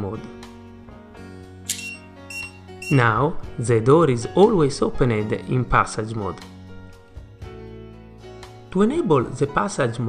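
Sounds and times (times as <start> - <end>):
soft background music: 0.0 - 10.0
short high electronic beeps: 1.7 - 3.0.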